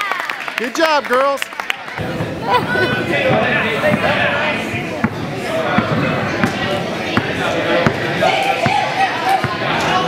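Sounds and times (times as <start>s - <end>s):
voices of children and adults: 1.6s - 10.0s
basketballs bouncing on gym floor: 2.0s - 9.7s.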